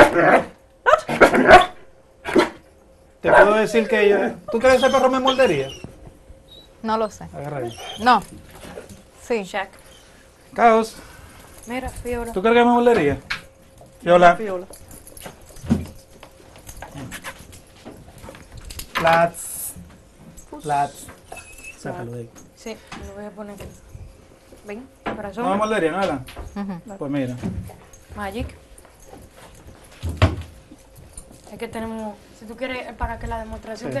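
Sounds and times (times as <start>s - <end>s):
dog barking: 0.0s - 2.6s, 3.2s - 5.8s
dogs panting: 3.3s - 9.1s.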